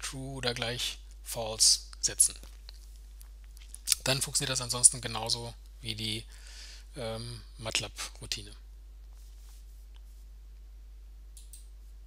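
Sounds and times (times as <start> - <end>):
low electrical hum: 0.0 - 12.0
computer mouse clicks: 11.4 - 11.7.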